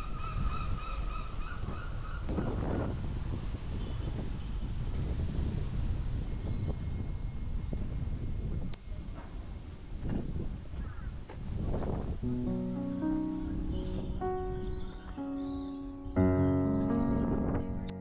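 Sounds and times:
wind rumbling on microphone: 0:00.0 - 0:12.8, 0:16.8 - 0:18.0.

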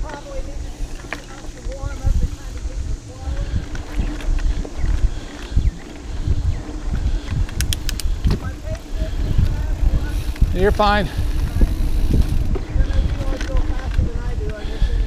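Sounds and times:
mountain bike rumbling on trail: 0:00.0 - 0:15.0
sharp bike clicks: 0:00.0 - 0:15.0.

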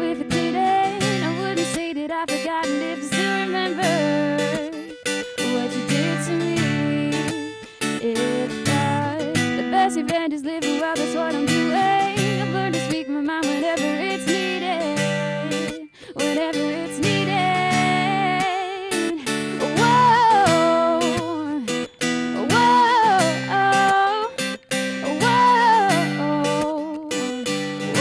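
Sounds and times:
strummed acoustic guitar: 0:00.0 - 0:28.0
woman singing: 0:00.0 - 0:28.0.

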